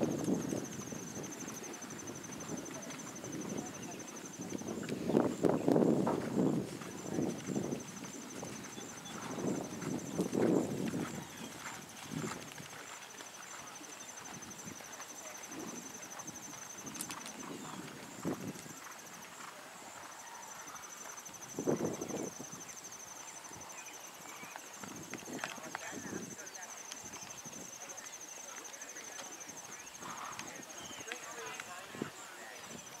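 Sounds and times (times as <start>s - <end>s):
horse hoofbeats on sand: 6.0s - 20.0s.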